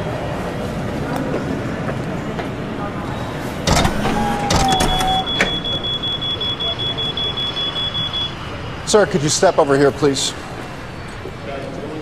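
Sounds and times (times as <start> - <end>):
metal detector alarm beeping: 3.7 - 8.4.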